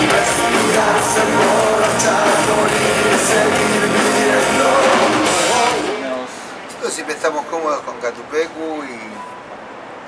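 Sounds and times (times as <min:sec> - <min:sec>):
rock band playing: 0:00.0 - 0:06.0.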